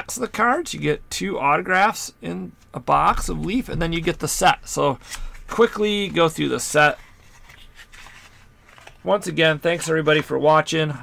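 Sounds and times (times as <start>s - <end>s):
cards and cardboard rustling: 3.0s - 10.4s.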